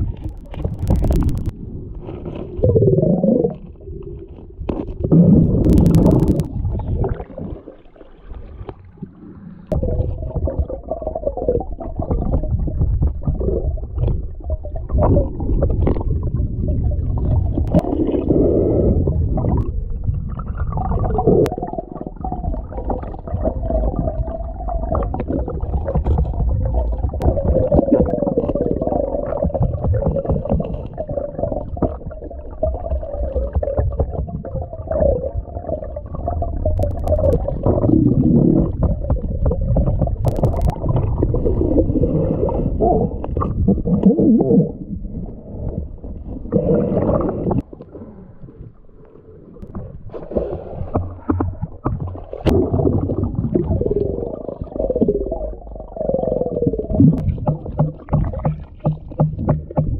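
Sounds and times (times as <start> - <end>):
sharp clicks: 0.2 - 1.5
underwater creek current rushing: 4.9 - 59.9.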